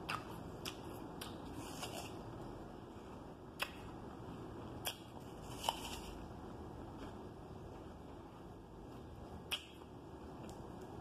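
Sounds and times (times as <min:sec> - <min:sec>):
mouth chewing apple: 0:00.0 - 0:04.0, 0:04.6 - 0:11.0.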